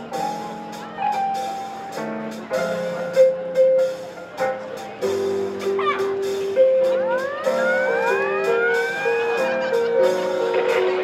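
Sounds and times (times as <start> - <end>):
marching band music: 0.0 - 11.0.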